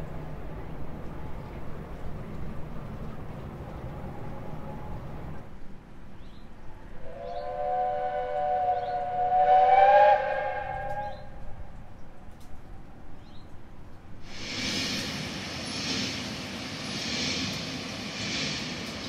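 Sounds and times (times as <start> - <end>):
steam whistle chord: 7.0 - 11.6.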